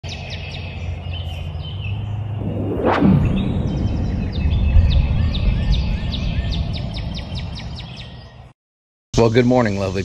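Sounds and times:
birds chirping: 0.0 - 8.6.

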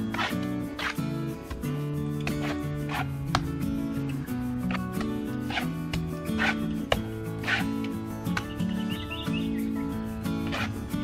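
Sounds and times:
background music: 0.0 - 11.0
trowel scraping wet cement: 0.0 - 11.0.

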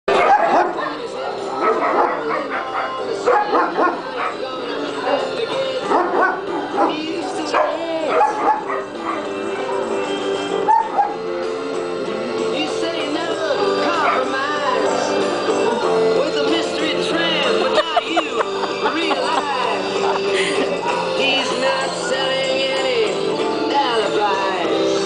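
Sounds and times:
dogs barking and whining: 0.1 - 11.4, 13.8 - 15.2, 19.8 - 23.0
music playing: 0.1 - 25.0.

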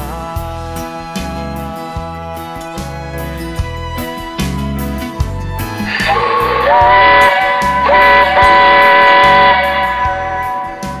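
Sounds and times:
guitar music: 0.0 - 11.0
steam hissing: 5.9 - 11.0
steam locomotive whistle: 5.9 - 11.0.

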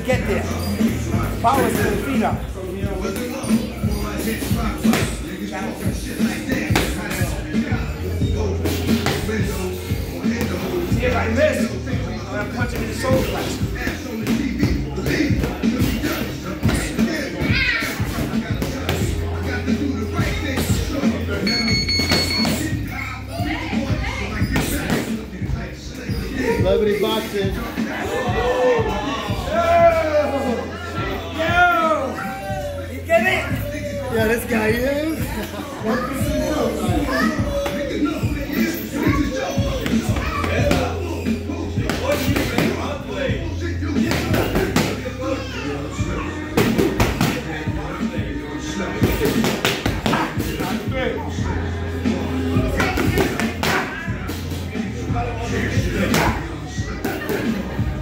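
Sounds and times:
background music: 0.0 - 58.0
voices: 0.0 - 58.0.

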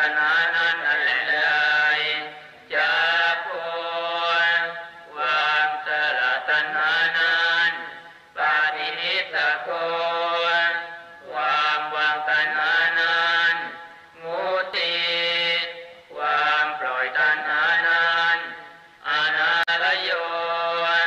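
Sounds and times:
person chanting: 0.0 - 21.0.

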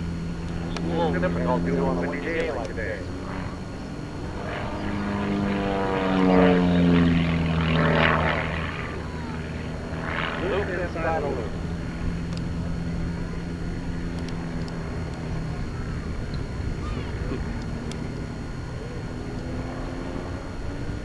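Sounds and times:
plane engine and propeller droning: 0.0 - 21.0.

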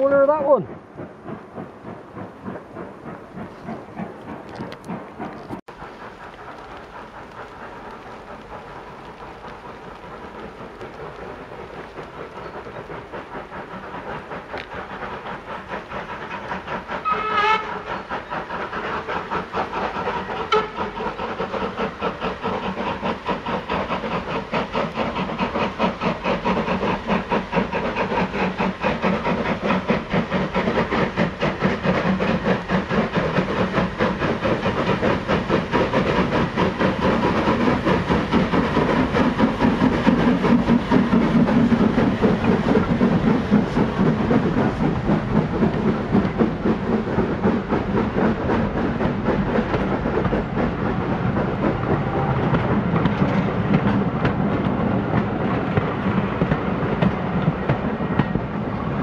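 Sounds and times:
steam locomotive chuffing: 0.0 - 59.0.

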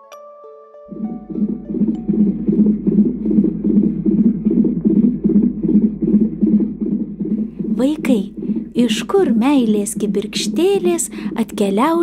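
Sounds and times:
low hum: 0.9 - 11.8
fetal heartbeat pulsing: 0.9 - 12.0.

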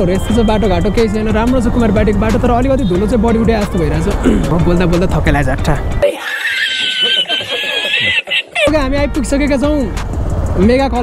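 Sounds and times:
low road noise: 0.0 - 6.0, 7.2 - 11.0
man's high-pitched laughter: 6.0 - 8.8.

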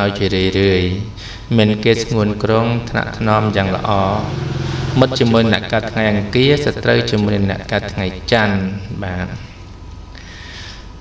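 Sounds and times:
man narrating: 0.0 - 4.4, 5.0 - 9.5.

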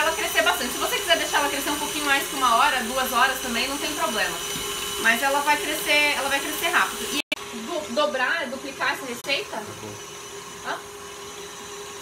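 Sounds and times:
stand mixer motor hum: 0.0 - 12.0.

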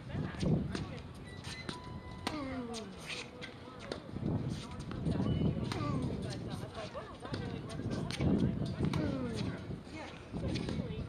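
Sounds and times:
distant talking voices: 0.0 - 11.0
tennis balls struck by racquets: 2.2 - 5.0, 5.6 - 6.5, 7.2 - 9.7.

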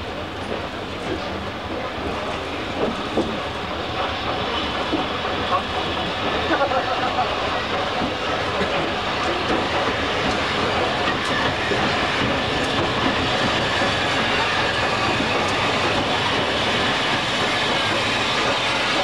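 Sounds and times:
rail joint clicks: 0.0 - 19.0
steam engine hissing: 0.0 - 19.0
train wheels rolling on track: 0.0 - 19.0.

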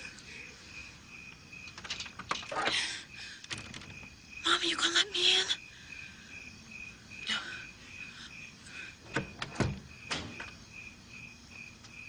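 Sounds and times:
insects chirping: 0.0 - 12.0.

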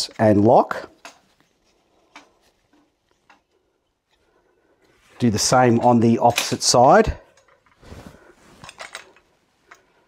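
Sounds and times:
metal frame handling clicks: 8.6 - 9.9.

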